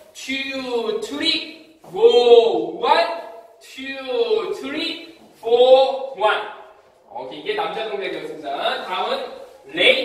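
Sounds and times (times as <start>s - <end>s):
man calling out: 0.0s - 10.0s.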